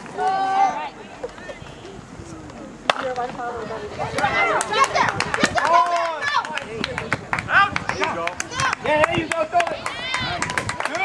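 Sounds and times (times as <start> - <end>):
spectators shouting: 0.0 - 2.0.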